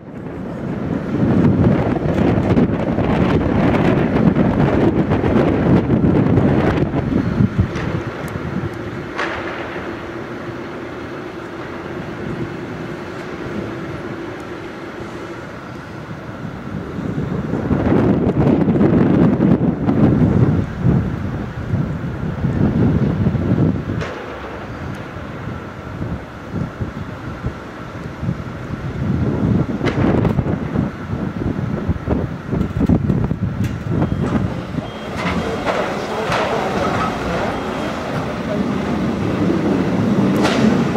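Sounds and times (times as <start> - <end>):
heavy machinery running: 0.0 - 40.9
wind gusting on microphone: 0.0 - 40.9.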